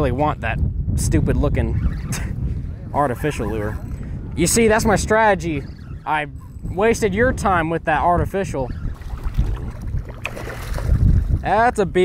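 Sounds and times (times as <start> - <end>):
wind noise on microphone: 0.0 - 12.0
fish thrashing and splashing: 8.9 - 11.4.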